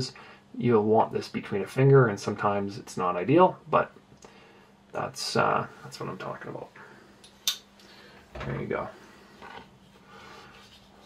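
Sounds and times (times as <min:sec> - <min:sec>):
soft rub of handling: 0:08.7 - 0:11.0.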